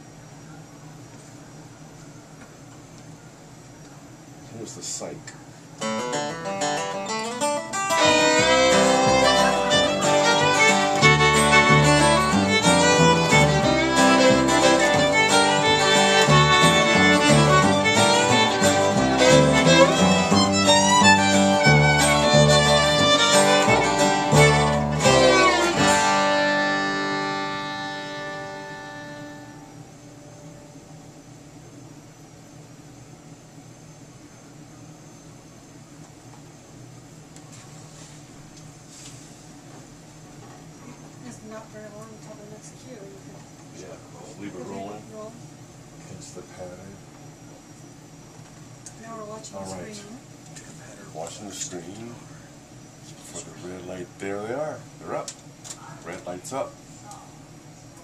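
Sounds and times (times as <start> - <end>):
acoustic guitar: 5.8 - 30.0
fiddle: 7.7 - 29.7
upright bass: 7.9 - 27.2.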